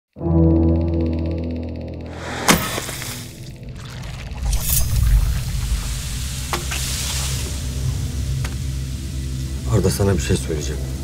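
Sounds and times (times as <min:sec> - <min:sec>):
low rumbling drone: 0:00.5 - 0:11.0
hissing swell: 0:02.1 - 0:11.0.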